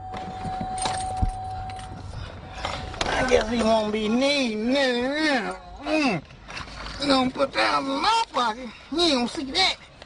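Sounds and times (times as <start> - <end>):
light metallic jangling: 0.2 - 2.8.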